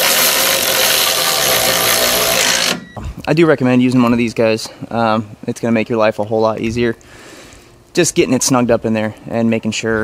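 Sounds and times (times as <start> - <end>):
power ratchet whirring: 0.0 - 2.8.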